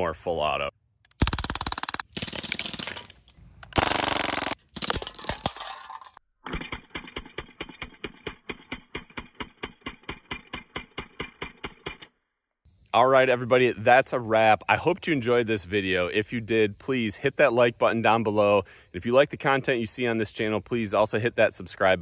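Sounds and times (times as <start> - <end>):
pellets striking metal cans: 4.1 - 6.2.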